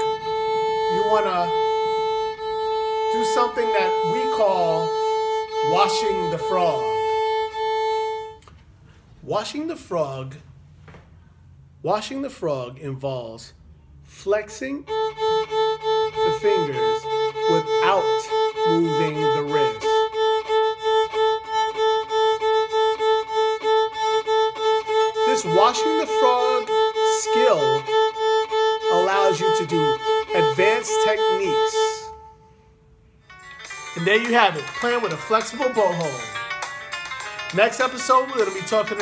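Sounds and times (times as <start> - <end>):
violin bowing a steady note: 0.0 - 8.5, 14.8 - 32.8, 37.8 - 39.0.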